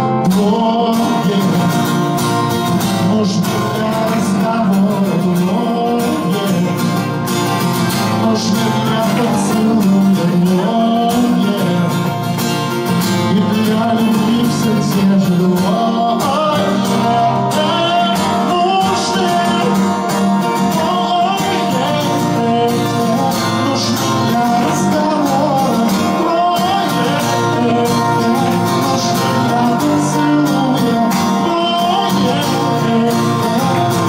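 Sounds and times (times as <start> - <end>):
acoustic guitar picking melody: 0.0 - 34.0
acoustic guitar strumming chords: 0.0 - 34.0.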